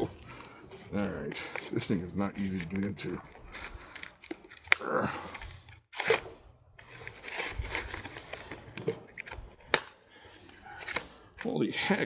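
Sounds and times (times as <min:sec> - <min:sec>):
knife cutting plastic packaging: 0:00.0 - 0:04.8
plastic snapping: 0:06.8 - 0:10.0, 0:10.6 - 0:11.5.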